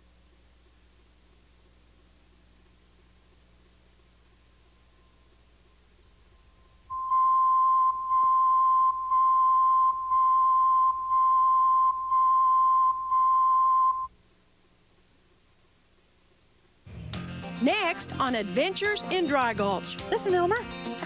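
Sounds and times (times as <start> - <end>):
faint hum: 0.0 - 16.9
high countdown beeps: 6.9 - 14.1.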